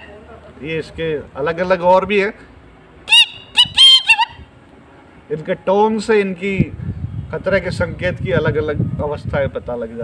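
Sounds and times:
man imitating bird alarm calls: 0:03.1 - 0:04.5.

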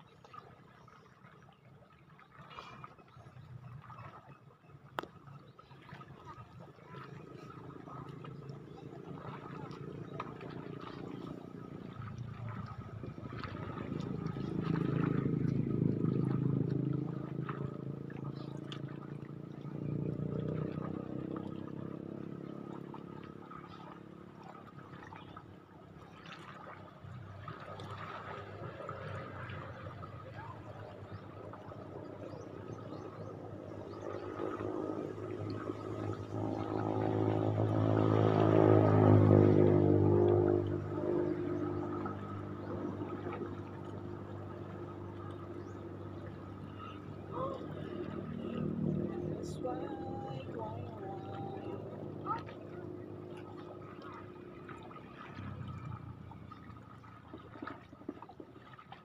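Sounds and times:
boat engine running: 0:00.0 - 0:59.0.

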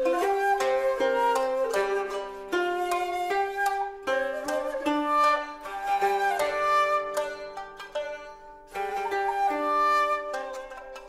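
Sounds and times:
plucked string instrument notes: 0:00.0 - 0:11.0.

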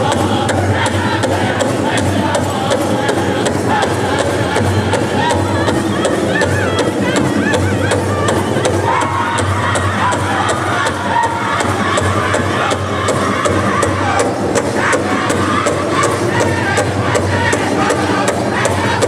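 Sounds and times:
crowd noise: 0:00.0 - 0:19.0
drum group singing: 0:00.0 - 0:19.0
large drum beating: 0:00.0 - 0:19.0.

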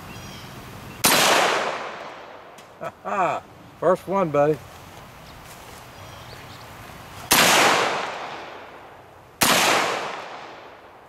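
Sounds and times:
rifle shots with echo: 0:01.0 - 0:02.5, 0:07.3 - 0:08.8, 0:09.4 - 0:11.0.

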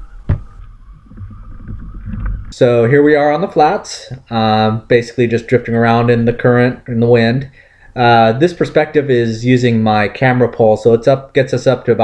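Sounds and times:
wind rumble on microphone: 0:00.0 - 0:02.6.

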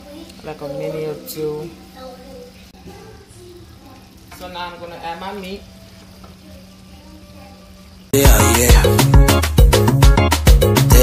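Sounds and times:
faint sizzle of stew: 0:00.0 - 0:08.7.

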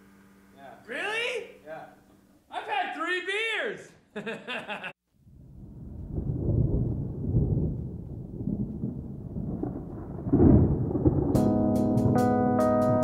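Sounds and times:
thunder rumbling: 0:05.2 - 0:13.0.

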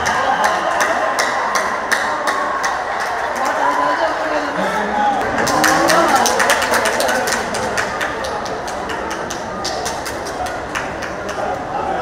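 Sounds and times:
crowd voices and shouting: 0:00.0 - 0:12.0.

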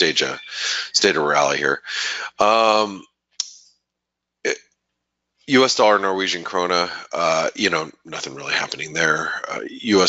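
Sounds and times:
person speaking a syllable: 0:00.0 - 0:03.0, 0:05.5 - 0:10.0.

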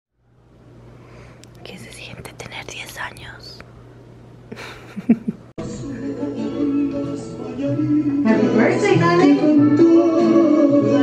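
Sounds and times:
steady low hum: 0:00.2 - 0:10.0
person whispering: 0:01.5 - 0:03.6.

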